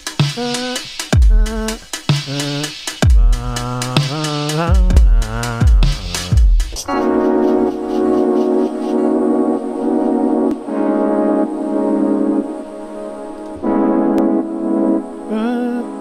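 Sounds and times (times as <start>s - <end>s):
held keyboard chords: 0.0s - 16.0s.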